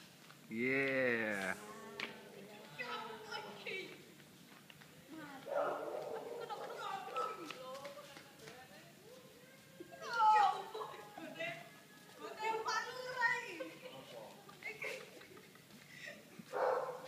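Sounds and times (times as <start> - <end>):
people and children chattering: 0.5 - 15.5.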